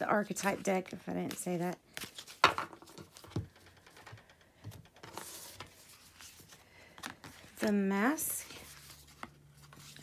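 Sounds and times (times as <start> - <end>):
cards being shuffled: 0.4 - 3.6, 5.0 - 10.0
card rustle: 5.0 - 10.0.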